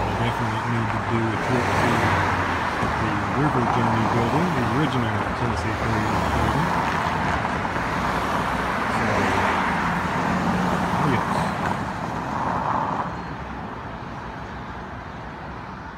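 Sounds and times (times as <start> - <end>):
traffic driving past: 0.0 - 15.9.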